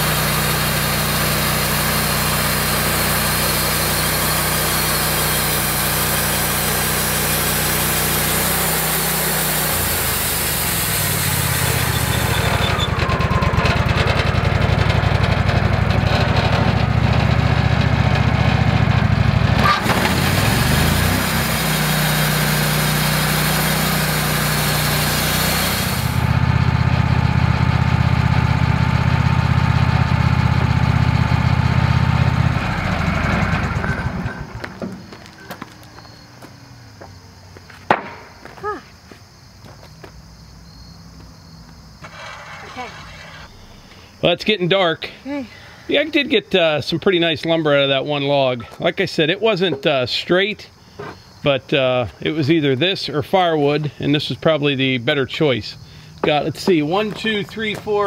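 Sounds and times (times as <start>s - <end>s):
band blade hissing through log: 0.0s - 12.9s, 19.7s - 26.3s, 42.0s - 44.2s
sawmill engine humming: 0.0s - 36.8s, 42.0s - 50.3s, 51.8s - 58.0s.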